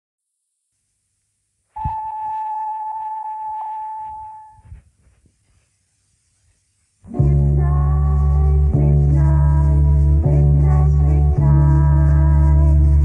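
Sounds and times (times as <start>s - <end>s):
tape hiss: 0.3s - 13.0s
steady electronic beep tone: 1.8s - 4.6s.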